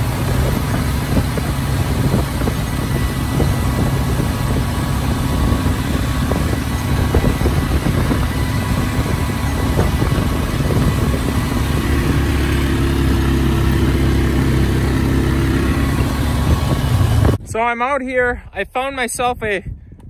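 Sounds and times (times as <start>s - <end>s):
atv engine hum: 0.0s - 17.4s
tractor diesel engine rumbling: 0.0s - 17.5s.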